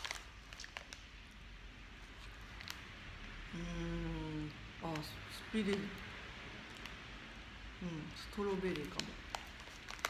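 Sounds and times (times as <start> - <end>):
woman humming: 3.5 - 4.5.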